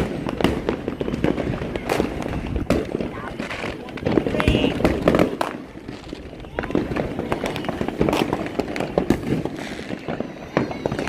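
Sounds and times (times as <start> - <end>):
fireworks bangs and pops: 0.0 - 11.0.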